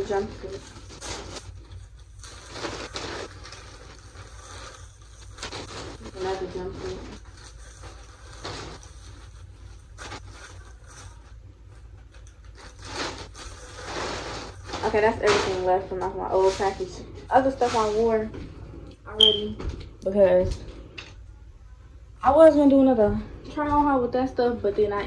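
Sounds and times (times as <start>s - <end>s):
plastic bag and clothing rustling: 0.0s - 18.3s
steady low hum: 0.0s - 25.0s.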